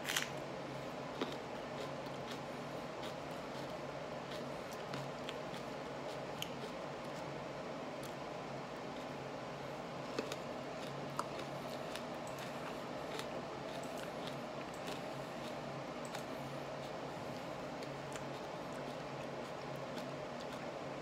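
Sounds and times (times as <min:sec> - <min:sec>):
low hum of room noise: 0:00.0 - 0:21.0.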